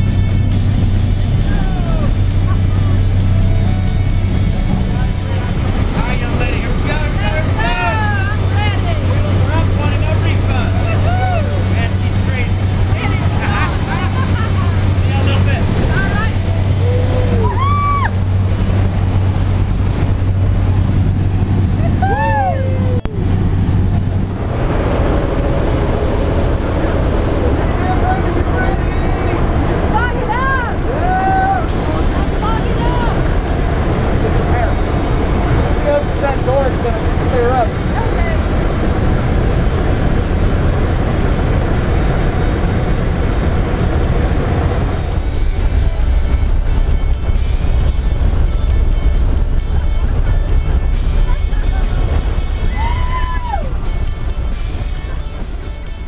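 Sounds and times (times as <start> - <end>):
propeller aircraft engine droning: 0.0 - 56.0
rough cabin noise: 0.0 - 56.0
voices: 1.2 - 20.0, 27.0 - 41.3, 49.6 - 56.0.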